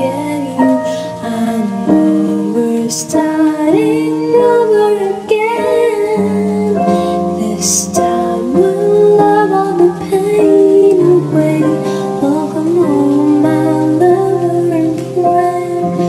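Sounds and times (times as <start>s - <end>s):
woman singing ballad: 0.0s - 16.0s.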